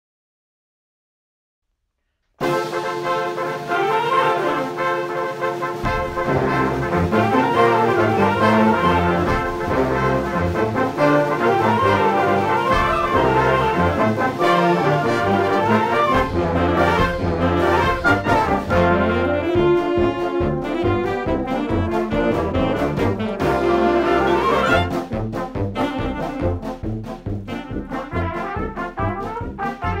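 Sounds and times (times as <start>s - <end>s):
concert band playing: 2.4s - 30.0s
low bass instruments: 5.8s - 30.0s.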